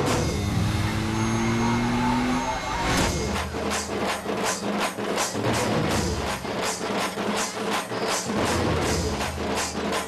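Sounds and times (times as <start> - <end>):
music with percussion: 3.0 - 10.0.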